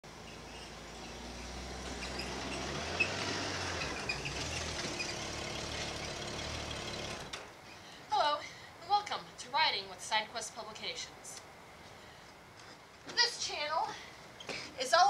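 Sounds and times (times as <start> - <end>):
motorcycle trike engine: 0.0 - 7.5.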